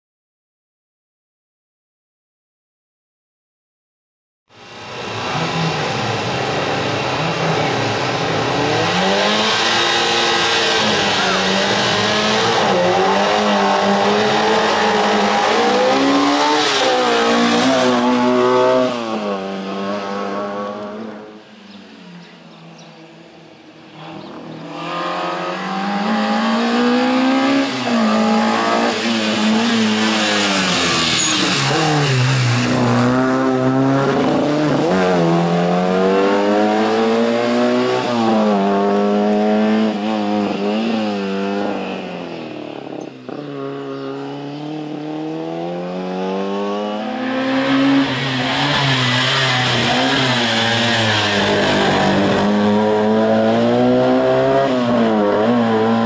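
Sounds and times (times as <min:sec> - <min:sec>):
race car engine revving: 0:04.9 - 0:21.3, 0:23.9 - 0:56.0.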